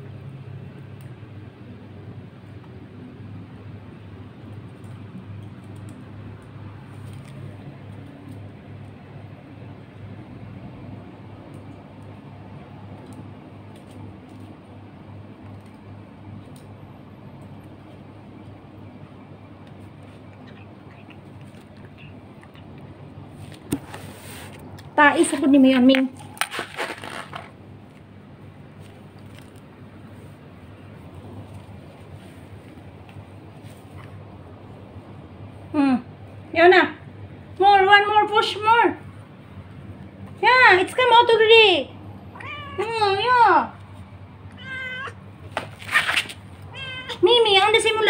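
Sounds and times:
rustling noise: 23.3 - 25.5, 26.1 - 28.0, 28.7 - 34.2, 45.4 - 46.6
cat meowing: 42.3 - 43.1, 44.5 - 45.2, 46.7 - 47.2.

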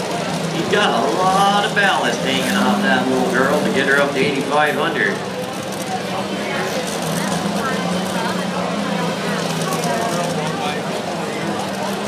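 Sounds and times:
murmur of voices: 0.0 - 12.0
tractor engine idling: 0.0 - 12.0.

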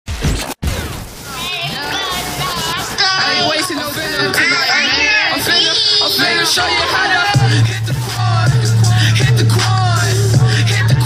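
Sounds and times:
crash sound effect: 0.1 - 1.3
background music: 3.1 - 11.0.

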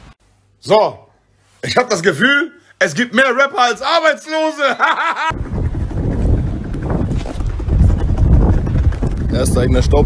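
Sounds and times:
loud low rumbling noise: 5.3 - 10.0.

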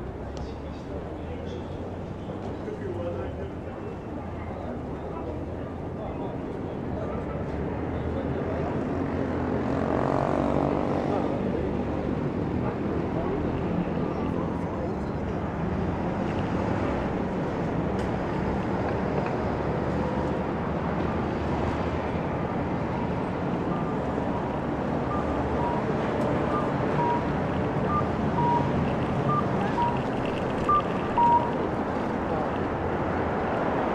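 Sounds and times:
road traffic rumble: 0.0 - 33.9.

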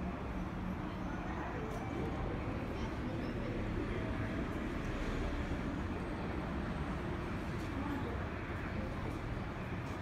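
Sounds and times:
faint voices: 0.0 - 10.0
low traffic rumble: 0.0 - 10.0.

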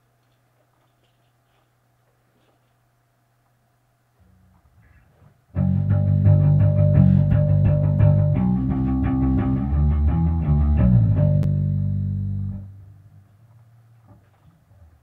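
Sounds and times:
electric bass guitar riff: 5.5 - 13.9.

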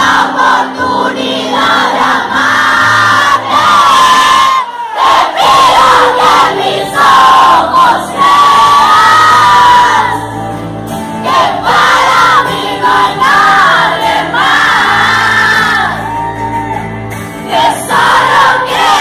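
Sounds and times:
audience singing along: 0.0 - 10.4, 11.0 - 16.2, 17.2 - 19.0
amplified lead vocal: 0.0 - 16.5, 17.1 - 19.0
live pop band: 0.0 - 19.0.

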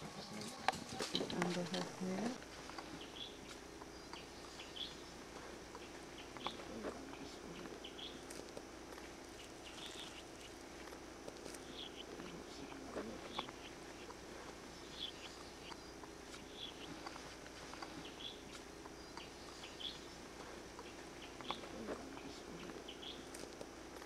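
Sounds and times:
steady low hum: 0.0 - 24.0.

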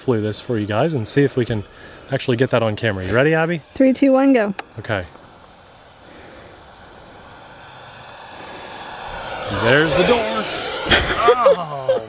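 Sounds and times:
model jet fan whine: 0.0 - 12.0.

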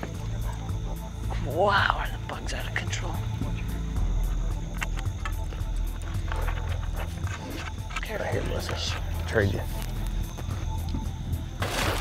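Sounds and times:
night insects chirring: 0.0 - 12.0.

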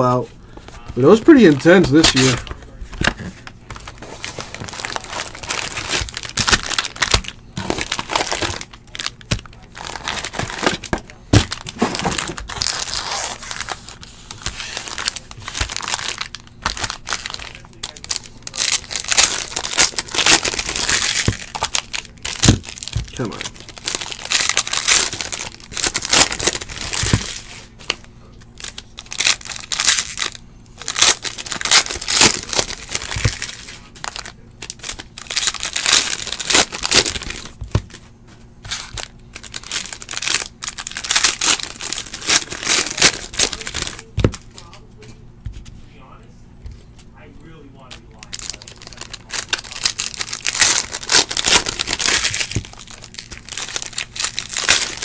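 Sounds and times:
foil wrappers crinkling and tearing: 0.0 - 45.1, 47.8 - 55.0
cards being handled: 0.5 - 45.8.

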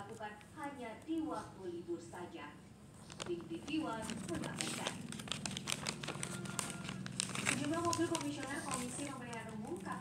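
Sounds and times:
paper crinkling: 3.0 - 10.0.

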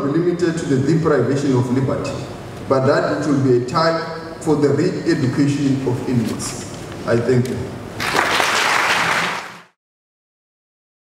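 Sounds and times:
audience applauding: 8.0 - 9.8.

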